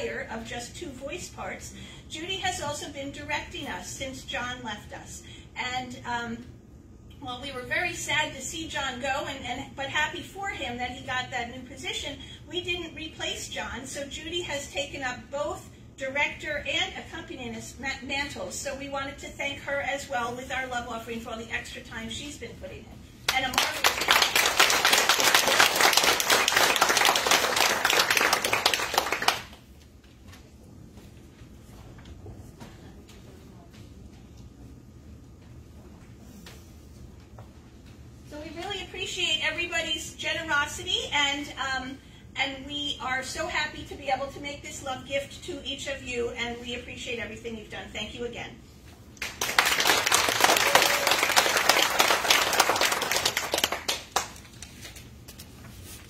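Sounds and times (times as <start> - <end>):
audience applauding: 23.6 - 29.6, 49.2 - 54.3.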